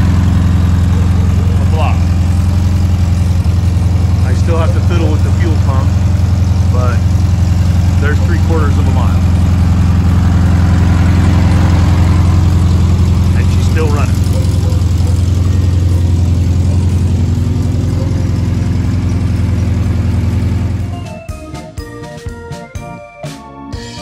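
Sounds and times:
piano music: 0:00.0 - 0:13.5, 0:14.1 - 0:24.0
car engine idling: 0:00.0 - 0:23.0.

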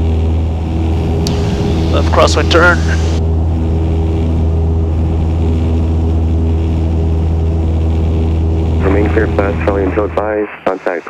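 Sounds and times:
propeller aircraft engine droning: 0:00.0 - 0:11.0.

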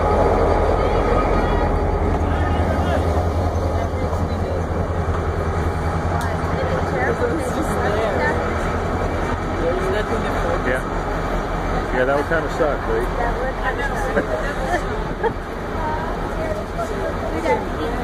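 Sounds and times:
diesel locomotive engine droning: 0:00.0 - 0:18.0
passengers talking: 0:00.0 - 0:18.0.

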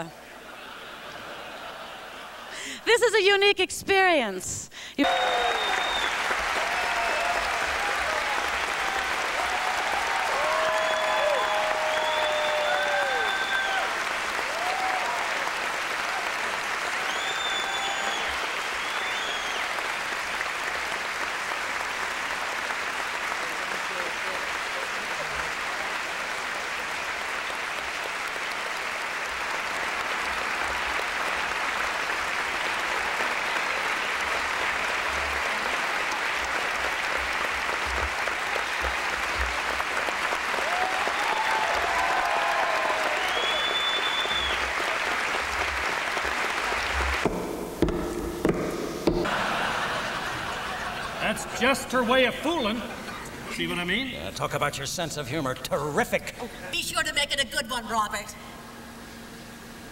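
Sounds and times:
audience applauding: 0:00.0 - 0:03.0, 0:05.0 - 0:54.1
people cheering: 0:05.0 - 0:47.4, 0:49.2 - 0:54.0.

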